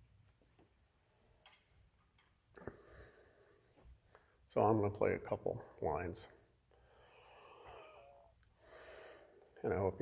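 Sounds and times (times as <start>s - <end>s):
soft breath: 2.6s - 4.4s, 6.7s - 9.6s.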